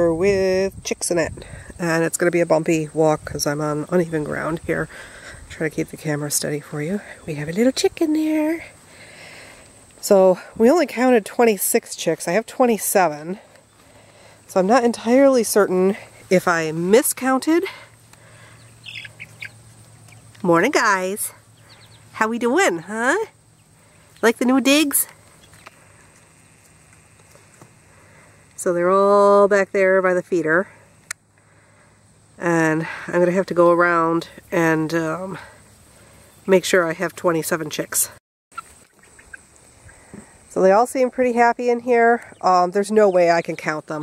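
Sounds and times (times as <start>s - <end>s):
chicks peeping: 18.1s - 22.5s, 23.5s - 27.7s, 38.6s - 40.4s, 42.0s - 43.8s.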